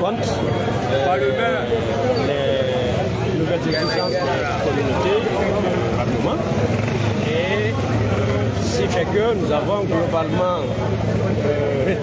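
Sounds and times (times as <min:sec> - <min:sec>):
vehicle engine rumbling: 0:00.0 - 0:12.0
voices: 0:00.0 - 0:12.0.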